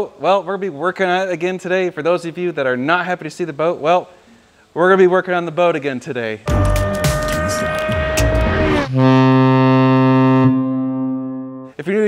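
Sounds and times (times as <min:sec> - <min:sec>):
deep horn-like note: 0:06.5 - 0:11.8.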